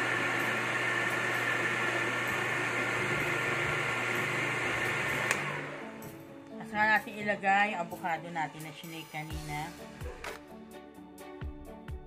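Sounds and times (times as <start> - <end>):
electric blender running: 0.0 - 6.2.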